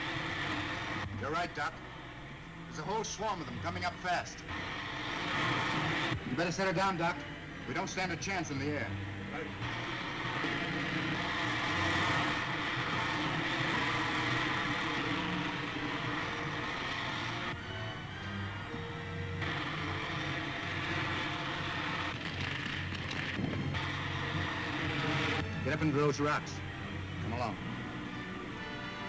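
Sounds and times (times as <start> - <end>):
rocket engine rushing: 0.0 - 1.8, 2.8 - 29.0.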